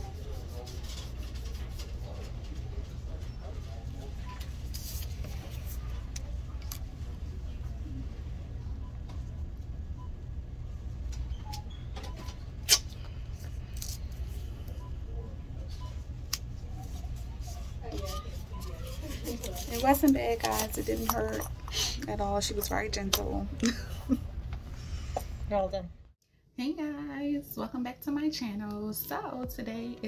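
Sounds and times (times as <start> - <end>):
faint voices: 0.0 - 9.6, 12.1 - 24.3
low background hum: 0.0 - 30.0.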